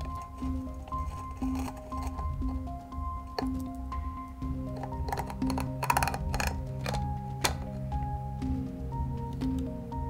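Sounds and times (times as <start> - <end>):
background music: 0.0 - 10.0
plastic clicks and rattles: 4.8 - 7.7.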